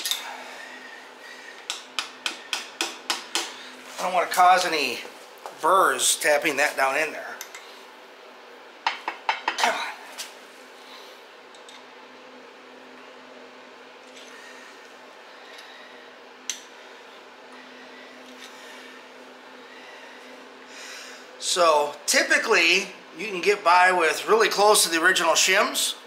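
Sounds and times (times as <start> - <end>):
heater humming: 0.0 - 26.0.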